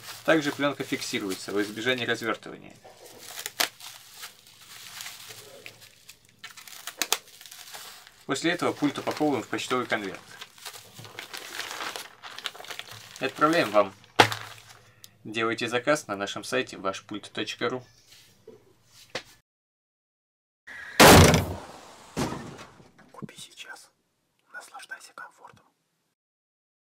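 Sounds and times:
plastic envelope crinkling: 0.0 - 14.9
person whispering: 23.1 - 25.8.

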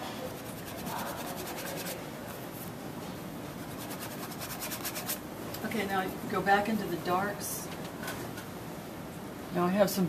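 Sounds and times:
paintbrush scratching on canvas: 0.2 - 2.6, 3.5 - 5.2.

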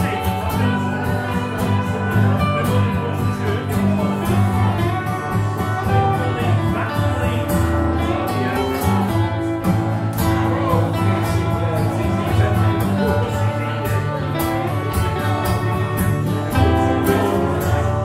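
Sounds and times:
acoustic guitar accompaniment: 0.0 - 18.0
slide resonator guitar: 0.0 - 18.0.

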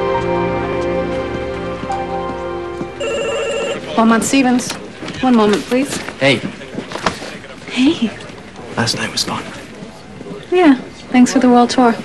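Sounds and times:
background music: 0.0 - 5.0
desk telephone ringing: 3.0 - 4.6.

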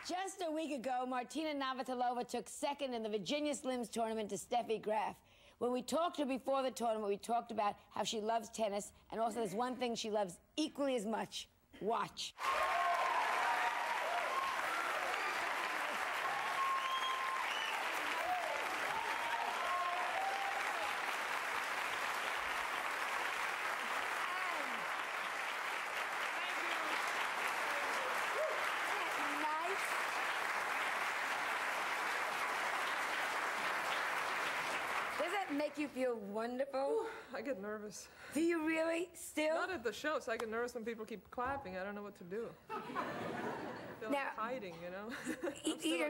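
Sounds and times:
people whooping and cheering: 12.4 - 21.4, 23.8 - 25.2, 26.3 - 29.9
audience applauding: 12.4 - 35.8.

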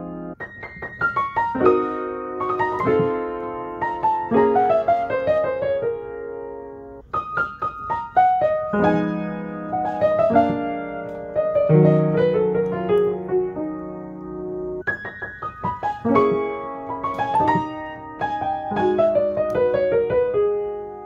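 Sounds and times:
jazz piano lick: 0.0 - 21.0.

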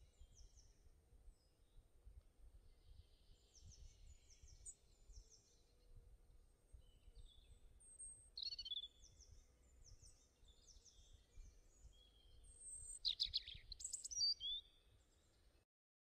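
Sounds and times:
songbirds chirping: 0.0 - 15.6.

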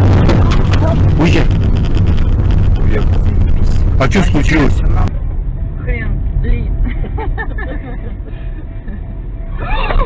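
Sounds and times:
car driving rumble inside cabin: 0.0 - 10.0.

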